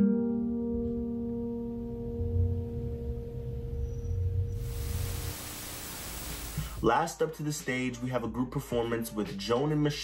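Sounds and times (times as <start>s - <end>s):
video static hiss: 2.6s - 6.8s.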